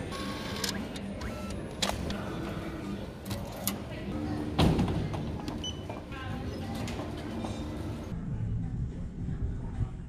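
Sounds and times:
printer mechanical whir: 0:00.0 - 0:04.6.

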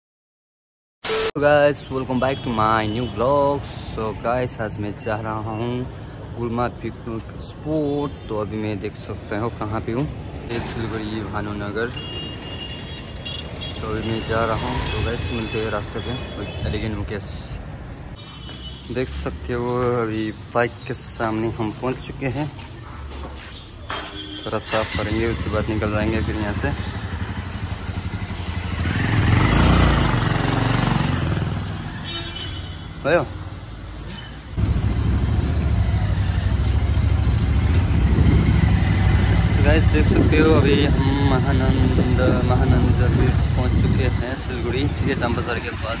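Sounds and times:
road traffic rumble: 0:01.1 - 0:46.0
motorcycle riding past: 0:24.9 - 0:32.1, 0:34.6 - 0:45.3.

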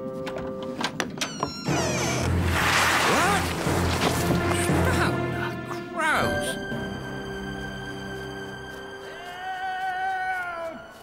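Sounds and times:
background music: 0:00.0 - 0:11.0
snow pouring rumble: 0:02.0 - 0:05.4.

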